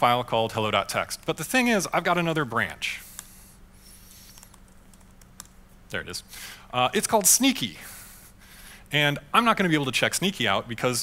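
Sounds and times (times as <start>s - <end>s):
steady low hum: 0.0s - 11.0s
computer keyboard keystrokes: 4.2s - 5.6s.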